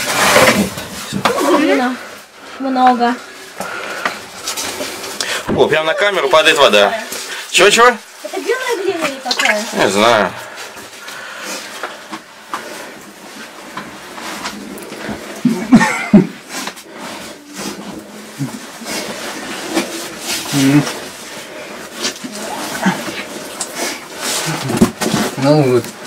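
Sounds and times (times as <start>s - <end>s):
clothing scraping against stone: 0.0s - 7.4s, 11.6s - 26.0s
heavy breathing: 1.7s - 5.5s, 10.3s - 13.2s.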